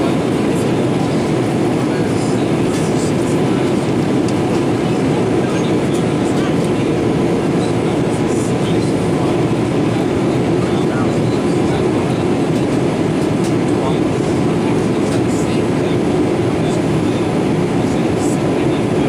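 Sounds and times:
airplane cabin roar: 0:00.0 - 0:19.0.

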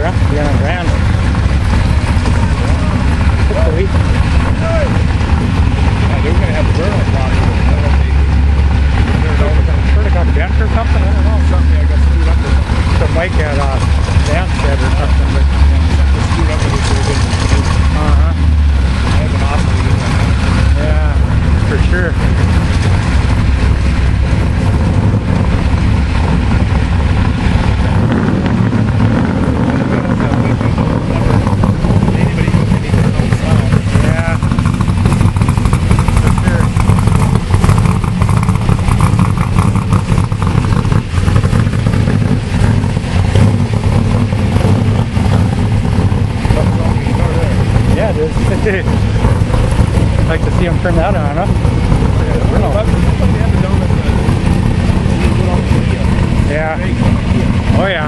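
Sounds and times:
people talking: 0:00.0 - 0:01.2, 0:01.8 - 0:05.2, 0:05.8 - 0:22.7, 0:29.4 - 0:34.7, 0:35.6 - 0:37.0, 0:46.4 - 0:58.0
truck engines rumbling: 0:00.0 - 0:58.0.

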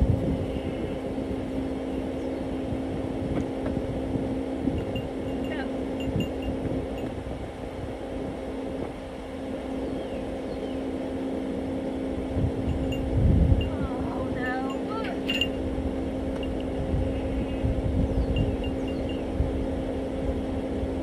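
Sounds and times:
low rumble: 0:00.0 - 0:21.0
mechanical hum: 0:00.0 - 0:21.0.

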